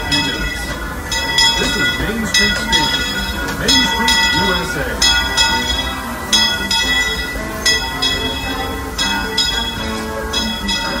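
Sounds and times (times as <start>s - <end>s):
locomotive bell clanging: 0.0s - 11.0s
low rumble of moving train: 0.0s - 11.0s.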